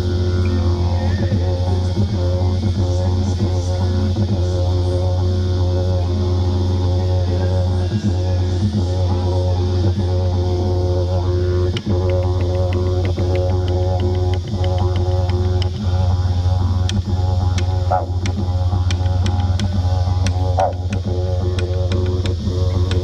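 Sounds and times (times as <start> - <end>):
didgeridoo drone: 0.0 - 23.0.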